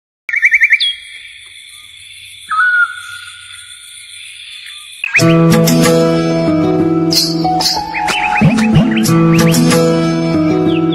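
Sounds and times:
bird-like chirping and whistling: 0.3s - 5.4s, 7.2s - 9.9s.

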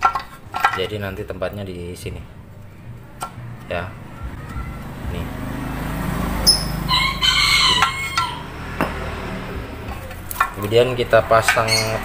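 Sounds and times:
rooster crowing: 6.3s - 8.8s.

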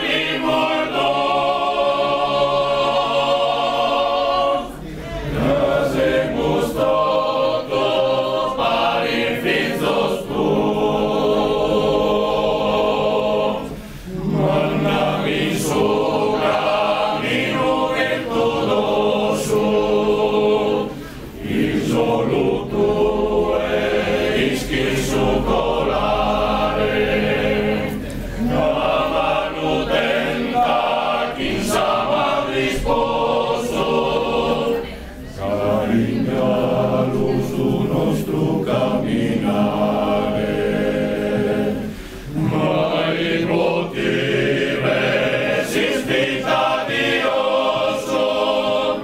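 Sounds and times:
male choir singing a cappella: 0.0s - 49.0s.

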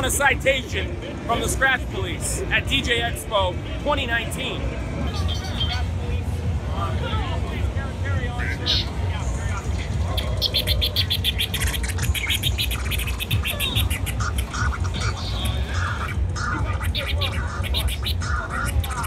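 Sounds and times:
crowd voices: 0.0s - 19.0s
vinyl scratching on turntable: 8.6s - 19.0s
bass-heavy beat through speakers: 9.9s - 19.0s.

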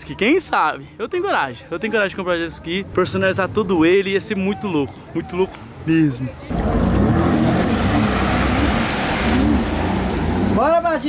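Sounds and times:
water rushing from jet: 6.5s - 10.8s.

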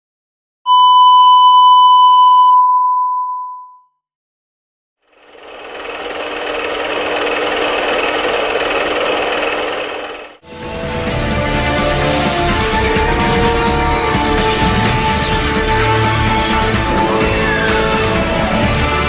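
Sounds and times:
test-card beep tone: 0.7s - 3.9s
film projector running hum: 5.0s - 10.4s.

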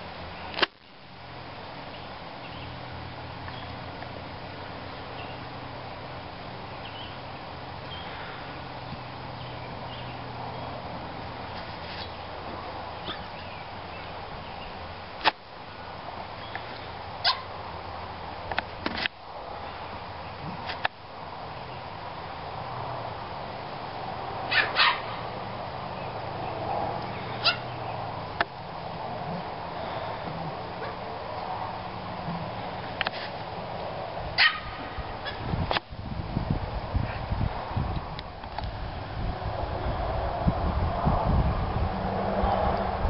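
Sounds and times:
dog yipping: 17.2s - 17.5s, 24.5s - 25.1s, 27.4s - 27.7s, 34.4s - 35.4s.

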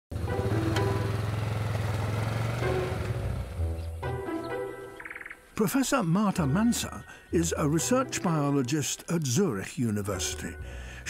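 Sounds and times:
quad bike engine running: 0.1s - 3.8s
background music: 0.1s - 11.0s.

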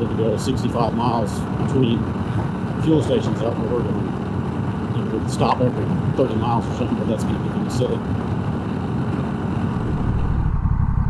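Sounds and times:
motorcycle engine drone: 0.0s - 11.0s
wind rush on microphone: 0.0s - 11.0s.

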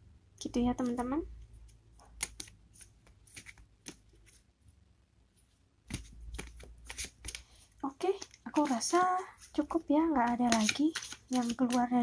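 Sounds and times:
cards being shuffled: 0.8s - 4.5s, 5.8s - 12.0s.

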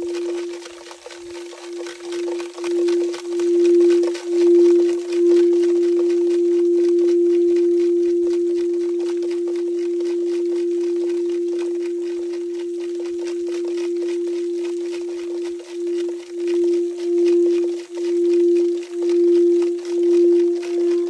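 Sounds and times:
singing bowl tone: 0.0s - 21.0s.

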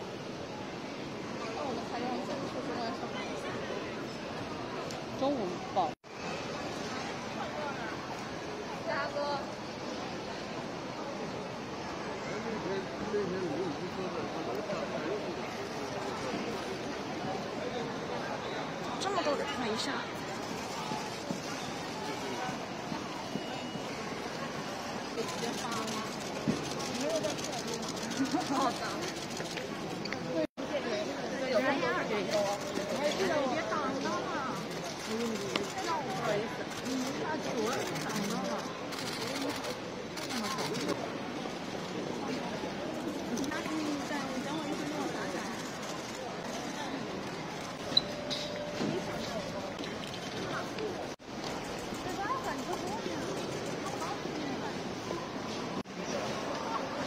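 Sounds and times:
people chattering: 0.0s - 57.0s.

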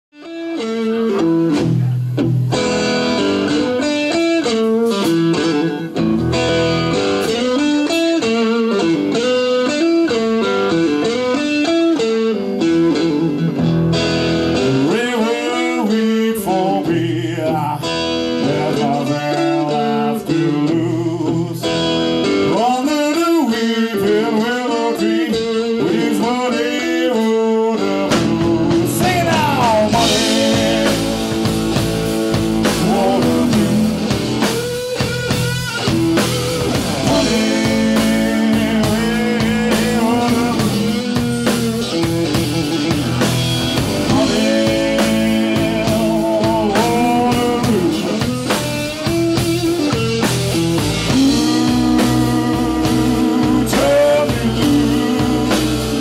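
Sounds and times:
blues band playing: 0.1s - 56.0s
electric guitar bent notes: 0.2s - 15.8s, 27.2s - 56.0s.

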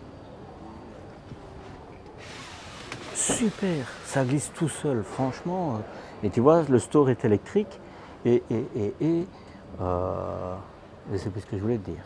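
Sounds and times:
fly screen sliding hiss: 2.2s - 5.3s.

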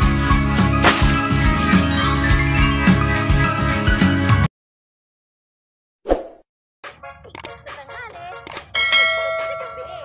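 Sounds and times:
bell ding: 8.8s - 10.0s.

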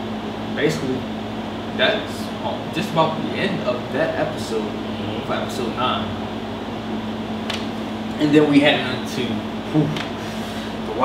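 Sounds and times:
room hum drone: 0.0s - 11.0s.

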